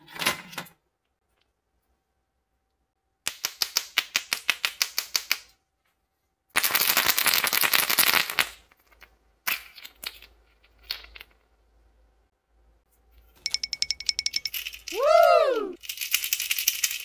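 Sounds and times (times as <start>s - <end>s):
toys rattling in plastic egg: 15.8s - 17.0s.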